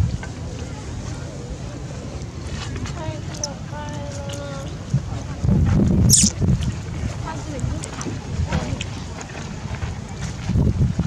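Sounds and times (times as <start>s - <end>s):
wind rumbling on microphone: 4.8s - 11.0s.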